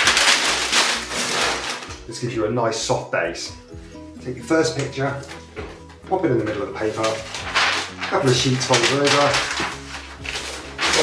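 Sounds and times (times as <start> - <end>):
packing paper being crumpled: 0.0 - 2.2, 6.4 - 11.0.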